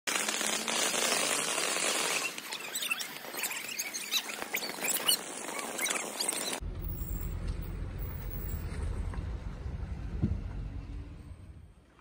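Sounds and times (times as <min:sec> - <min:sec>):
firework fountain hissing and crackling: 0:00.1 - 0:06.6.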